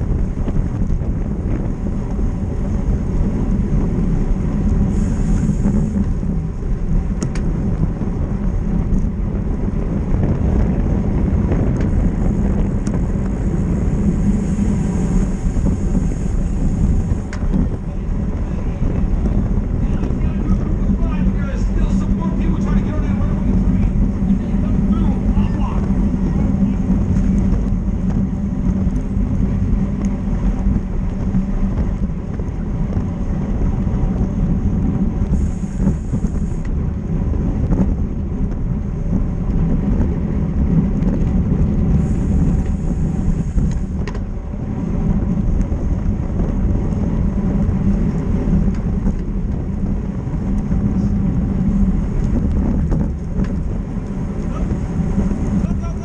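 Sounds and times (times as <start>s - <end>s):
wind rushing over microphone: 0.0s - 56.0s
faint voices: 17.6s - 27.1s.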